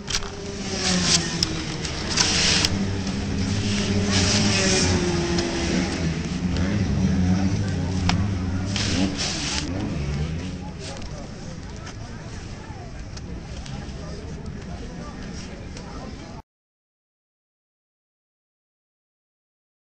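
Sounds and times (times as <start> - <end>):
kart engines idling: 0.0 - 15.8.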